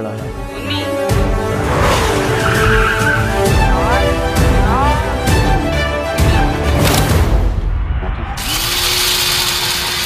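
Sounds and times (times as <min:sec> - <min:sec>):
trailer soundtrack music: 0:00.0 - 0:08.6.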